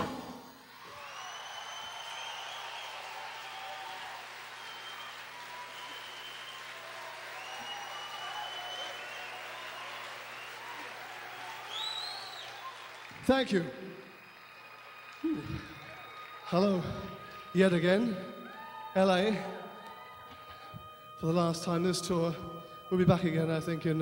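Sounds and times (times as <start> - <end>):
audience applauding and cheering: 0.0 - 23.0
long whistled notes: 0.7 - 24.0.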